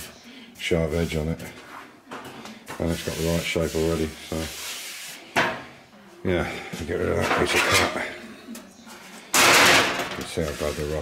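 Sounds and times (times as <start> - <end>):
sheet steel clatter: 9.3 - 10.4.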